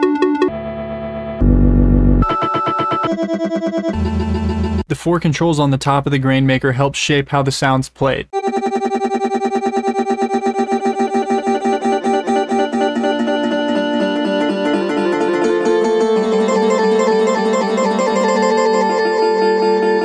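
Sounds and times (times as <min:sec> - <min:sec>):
granular synth chord texture: 0:00.0 - 0:04.8, 0:08.4 - 0:20.0.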